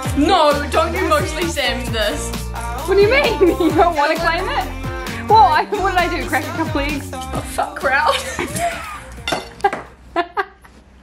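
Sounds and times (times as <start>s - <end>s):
kitchenware clinking on countertop: 8.4s - 9.9s.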